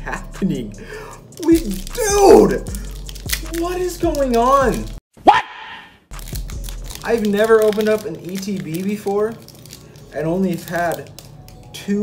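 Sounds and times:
man crying out rising in pitch: 1.6 - 2.7.

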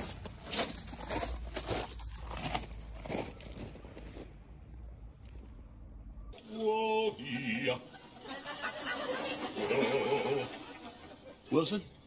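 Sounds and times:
footsteps crunching on gravel: 0.0 - 4.5.

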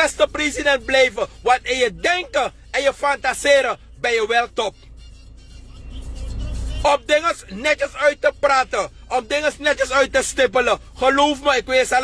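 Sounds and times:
road vehicle rumble: 0.0 - 12.0.

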